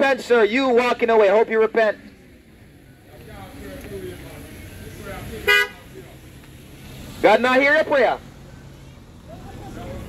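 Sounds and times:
car horn toot: 5.4 - 5.8.

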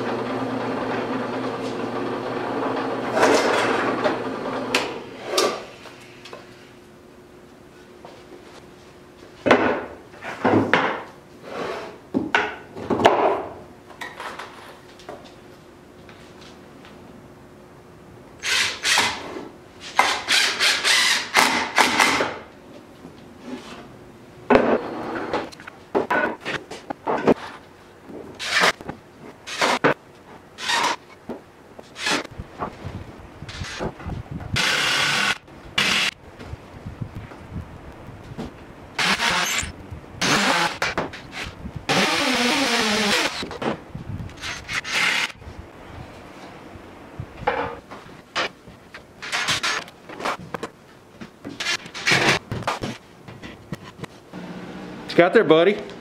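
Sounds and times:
cordless drill running: 20.3 - 21.4, 34.6 - 36.2, 39.0 - 40.8, 41.9 - 43.5, 44.4 - 45.4.

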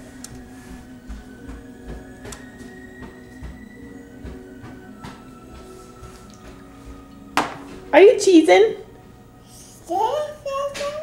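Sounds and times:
faint music with held tones: 0.0 - 11.0.

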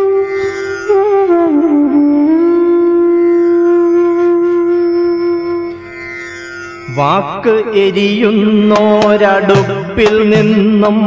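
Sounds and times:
wind instrument long note: 0.0 - 5.9.

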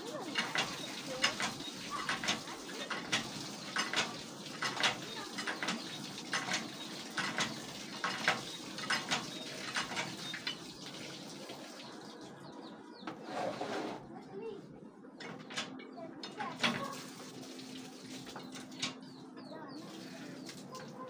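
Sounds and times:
hand water pump clanking: 0.0 - 12.0, 15.2 - 19.2.

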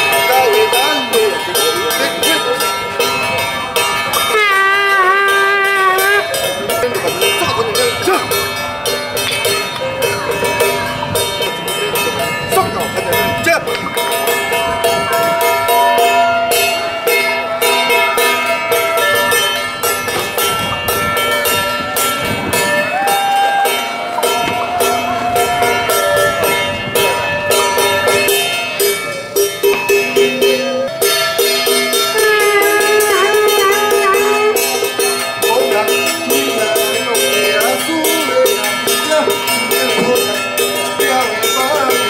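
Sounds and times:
bells and gongs clanging: 0.0 - 42.0
wavering melody: 0.0 - 42.0.

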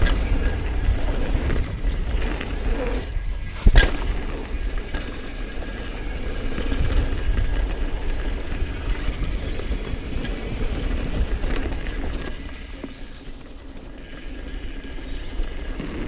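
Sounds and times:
bike rattling: 0.0 - 16.0
bike tyres rolling over dirt: 0.0 - 16.0
wind buffeting microphone: 0.0 - 16.0.

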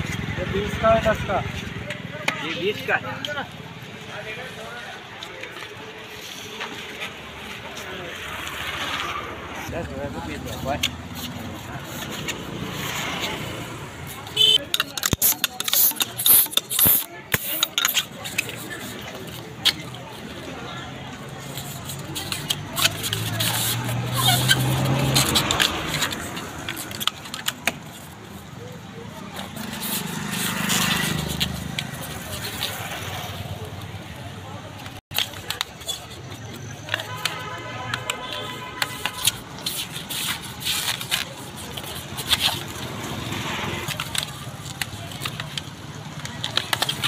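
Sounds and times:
balloons squeaking and rubbing: 10.4 - 20.4, 21.2 - 33.6, 35.1 - 47.0.

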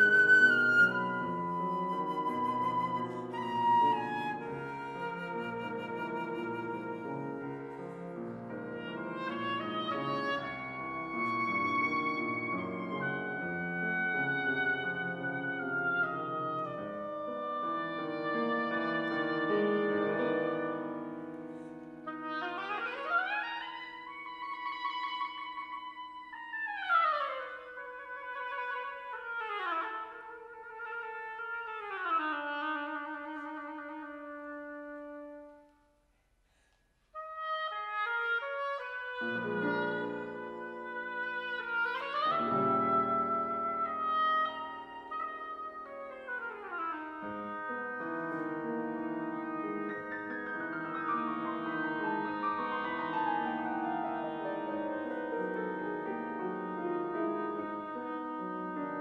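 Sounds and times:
flute oboe and piano playing: 0.0 - 35.9, 37.1 - 59.0
solo oboe gliding: 0.0 - 36.0, 37.1 - 59.0.

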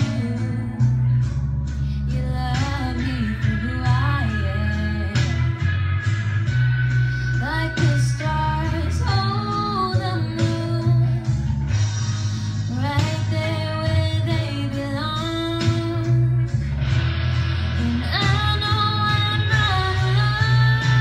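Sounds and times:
woman singing pop ballad: 0.0 - 5.9, 7.1 - 11.6, 12.2 - 16.7, 17.6 - 21.0.

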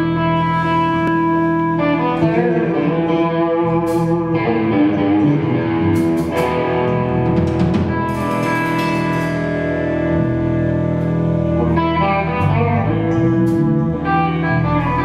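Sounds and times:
drums: 0.0 - 15.0
electric guitar chords: 0.0 - 15.0.

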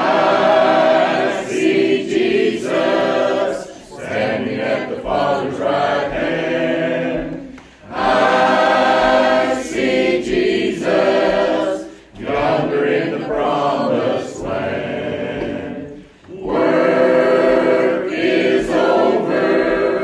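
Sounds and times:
congregation singing a hymn: 0.0 - 20.0.

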